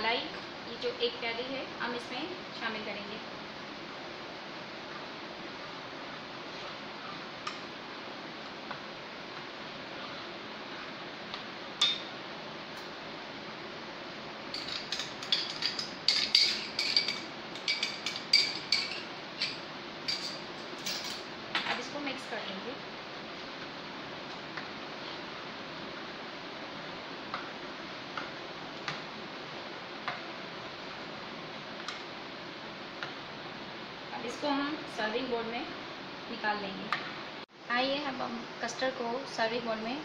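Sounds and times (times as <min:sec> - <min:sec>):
metal spoon clinking on steel bowl: 0:14.6 - 0:21.2.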